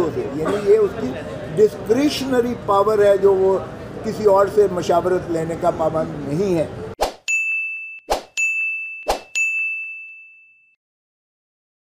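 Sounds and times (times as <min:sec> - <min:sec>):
bright bell-like ding: 0:07.3 - 0:10.8.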